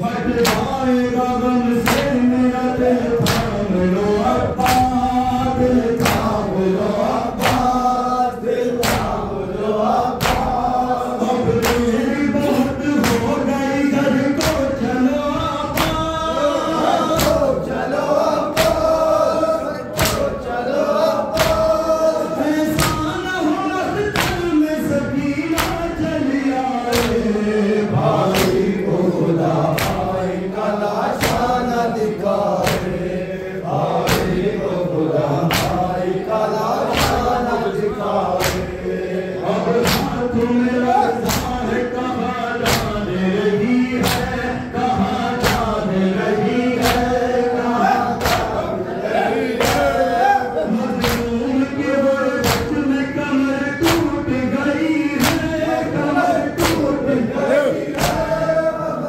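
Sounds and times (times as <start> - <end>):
men chanting in unison: 0.0 - 59.0
hands slapping chests: 0.3 - 0.8, 1.8 - 2.3, 2.9 - 3.6, 4.6 - 6.4, 7.0 - 7.9, 8.7 - 9.2, 10.0 - 10.8, 11.5 - 13.4, 14.3 - 14.8, 17.1 - 17.6, 18.5 - 19.0, 19.9 - 20.4, 21.3 - 22.0, 24.0 - 24.6, 25.5 - 26.0, 26.8 - 27.3, 28.2 - 28.8, 29.7 - 30.2, 31.1 - 31.6, 32.4 - 33.2, 34.0 - 34.6, 35.4 - 36.0, 36.7 - 38.9, 39.7 - 40.6, 41.2 - 41.8, 42.6 - 43.0, 44.0 - 44.5, 45.4 - 45.8, 46.8 - 47.4, 48.1 - 48.7, 49.6 - 50.1, 51.0 - 51.4, 52.4 - 52.8, 53.8 - 54.2, 55.2 - 55.7, 56.5 - 57.0, 57.8 - 58.4.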